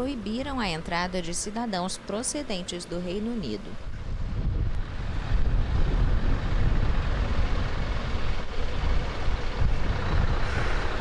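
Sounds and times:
lorry diesel engines rumbling: 0.0 - 11.0
tyres on wet tarmac: 0.0 - 11.0
wind on microphone: 3.6 - 11.0.

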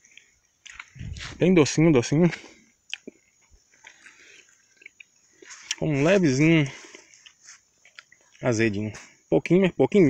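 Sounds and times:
person chewing: 0.0 - 1.4, 2.8 - 5.8, 6.7 - 8.4
small mouth clicks: 2.8 - 5.8.

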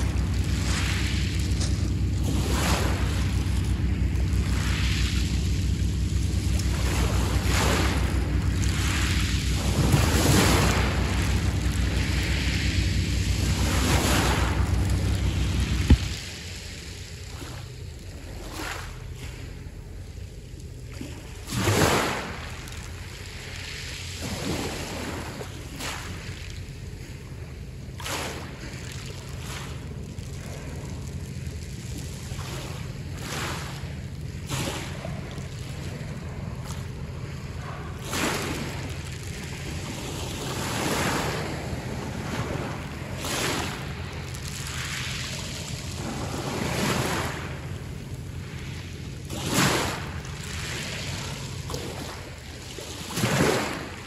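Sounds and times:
steady low rumble: 0.0 - 54.0
waves washing up pebble beach: 0.0 - 54.0.

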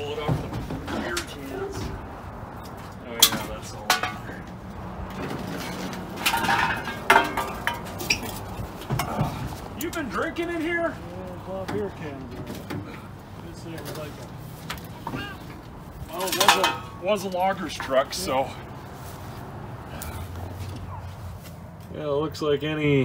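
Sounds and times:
metal clattering: 2.6 - 10.3, 11.6 - 18.5
metal knocks and clinks: 5.1 - 9.4, 16.1 - 17.0.

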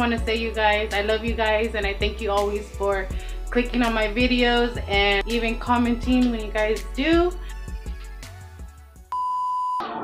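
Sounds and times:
faint background music: 0.0 - 8.8
high electronic beep: 9.1 - 9.9.

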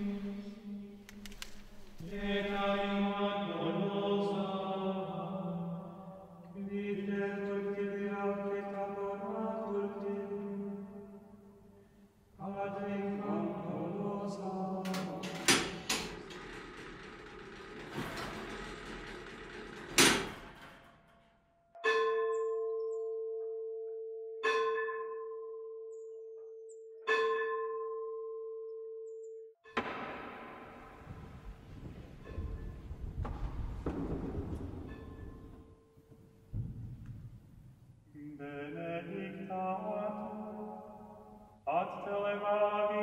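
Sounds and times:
church bell ringing: 21.8 - 23.6, 24.4 - 25.9, 27.1 - 28.6.

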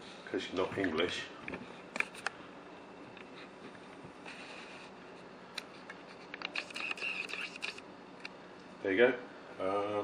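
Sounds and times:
camera clicks and scrapes: 5.8 - 7.9
lens motor whir: 6.4 - 7.9.

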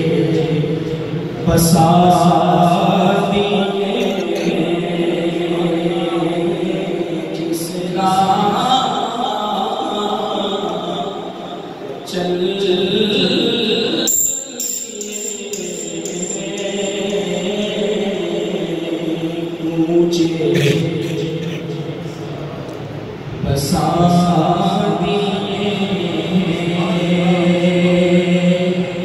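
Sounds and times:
man singing unaccompanied: 12.0 - 21.8, 23.4 - 29.0.

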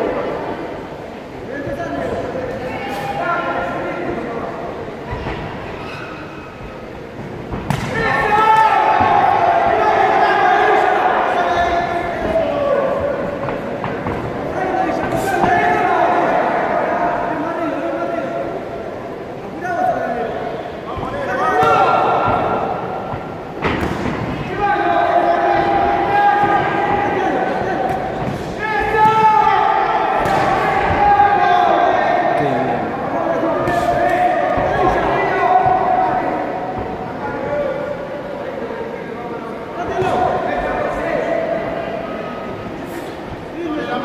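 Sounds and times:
people shouting and yelling: 0.0 - 44.0.

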